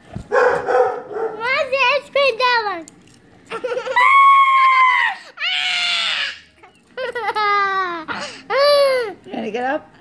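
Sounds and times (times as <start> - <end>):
young child screaming: 3.9 - 6.5
high-pitched playful scream: 3.9 - 6.6.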